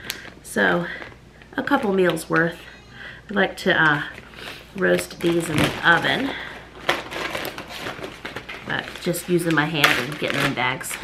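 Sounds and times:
plastic bag crinkling: 0:00.0 - 0:02.7, 0:03.7 - 0:11.0.

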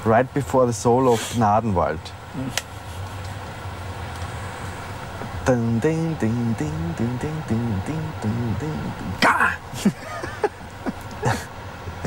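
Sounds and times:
vehicle rumble from inside cabin: 0:00.0 - 0:12.0.

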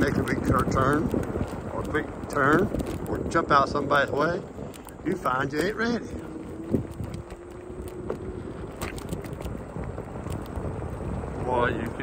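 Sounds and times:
tyres rolling on gravelly asphalt: 0:00.0 - 0:12.0
wind buffeting microphone: 0:00.0 - 0:12.0.

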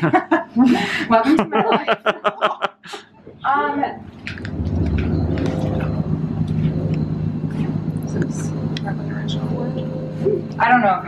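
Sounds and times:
road traffic rumble: 0:03.5 - 0:11.0.

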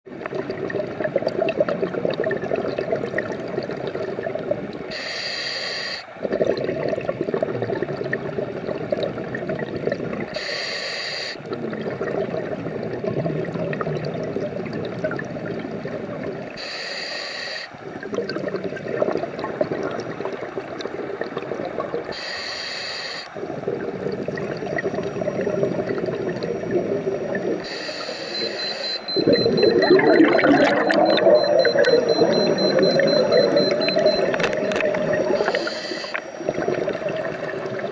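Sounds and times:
bubbling exhale underwater: 0:00.1 - 0:04.9, 0:06.2 - 0:10.4, 0:11.4 - 0:16.6, 0:17.8 - 0:22.2, 0:23.4 - 0:37.9
hissing regulator inhale: 0:04.9 - 0:06.1, 0:10.4 - 0:11.4, 0:16.6 - 0:17.8, 0:22.1 - 0:23.4, 0:27.6 - 0:29.1, 0:35.3 - 0:36.4.

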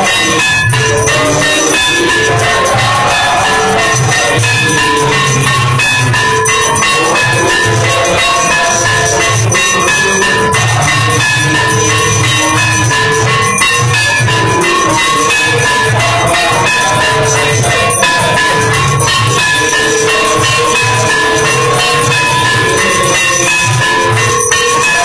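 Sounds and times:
bells ringing: 0:00.0 - 0:25.0
rattling percussion: 0:00.0 - 0:25.0.

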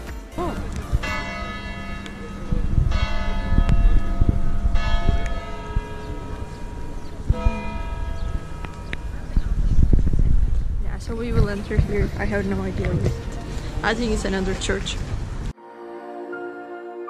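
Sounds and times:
large bell tolling: 0:00.4 - 0:10.0
low rumble of wind: 0:00.6 - 0:15.6.

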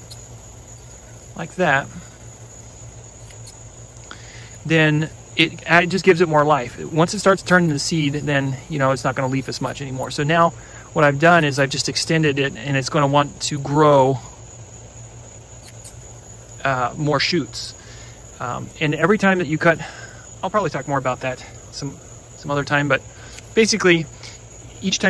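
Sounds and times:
crickets chirring: 0:00.0 - 0:25.0
man speaking: 0:01.4 - 0:02.0, 0:04.6 - 0:14.3, 0:16.6 - 0:17.8, 0:18.4 - 0:25.0.

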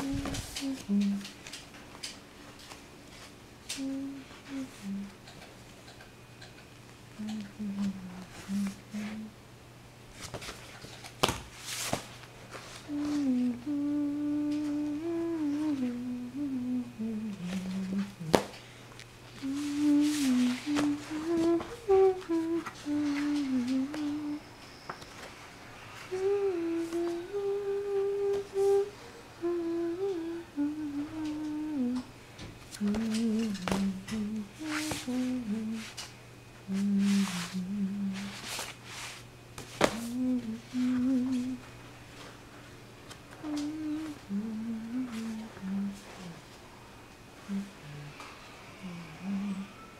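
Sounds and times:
person humming a melody: 0:00.0 - 0:01.5, 0:03.6 - 0:06.0, 0:07.1 - 0:09.4, 0:12.8 - 0:18.5, 0:19.3 - 0:24.6, 0:26.0 - 0:32.1, 0:32.7 - 0:36.0, 0:36.6 - 0:38.6, 0:39.8 - 0:41.7, 0:43.3 - 0:46.6, 0:47.4 - 0:49.9.

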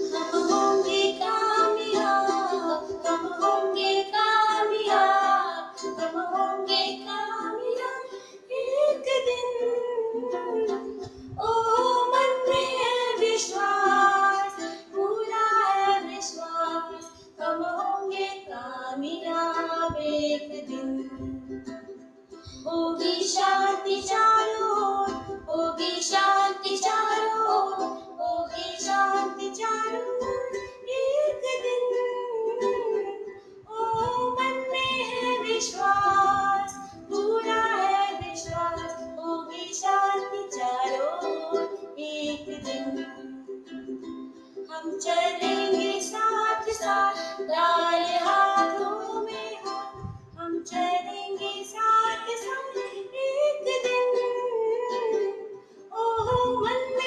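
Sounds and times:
boy and woman singing: 0:00.0 - 0:44.0, 0:44.6 - 0:57.0
ukulele strumming: 0:00.0 - 0:57.0.

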